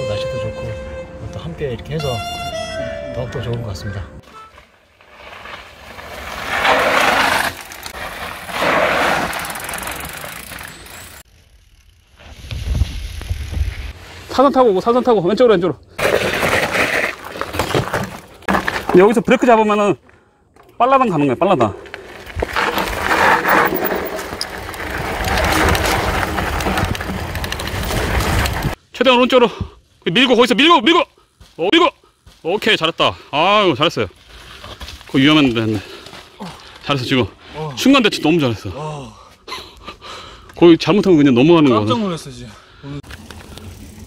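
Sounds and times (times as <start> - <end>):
bike tyres crunching over dirt: 4.2 - 15.4, 16.0 - 20.2, 20.8 - 28.8, 30.2 - 37.3, 43.0 - 44.0.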